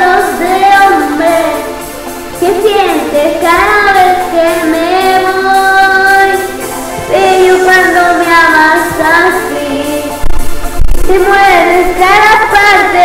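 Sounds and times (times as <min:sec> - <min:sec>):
backing music: 0:00.0 - 0:13.0
woman singing pop ballad: 0:02.4 - 0:10.2.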